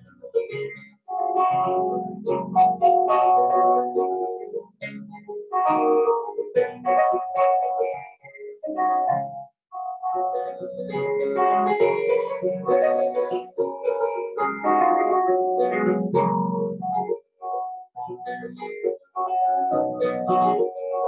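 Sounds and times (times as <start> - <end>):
grand piano playing: 0.0 - 21.0.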